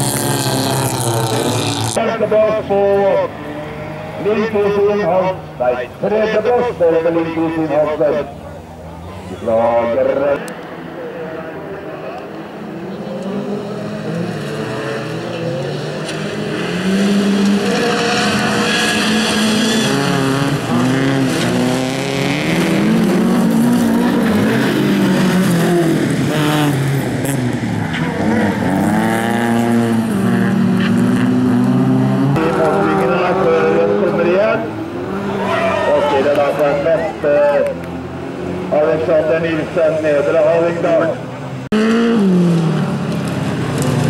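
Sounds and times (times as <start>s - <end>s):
race car engines revving: 0.0s - 44.0s.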